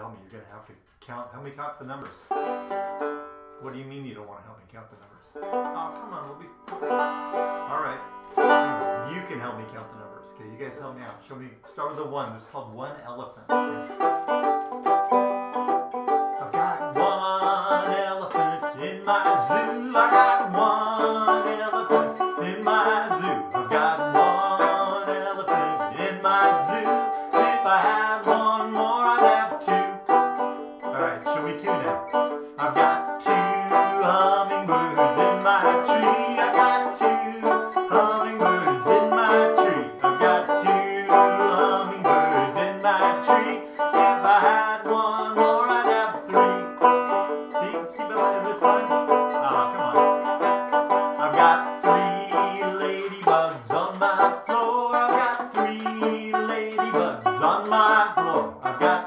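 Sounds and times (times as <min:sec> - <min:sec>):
banjo plucking bluegrass: 0:01.8 - 0:59.0.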